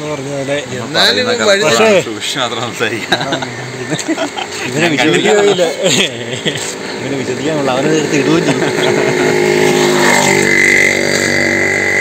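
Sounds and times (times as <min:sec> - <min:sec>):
high steady whine: 0:00.0 - 0:12.0
vehicle engine running: 0:00.0 - 0:12.0.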